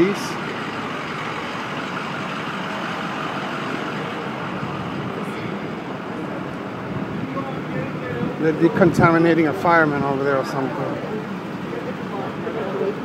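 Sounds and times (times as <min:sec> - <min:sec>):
city traffic: 0:00.0 - 0:13.0
trucks idling: 0:00.0 - 0:13.0.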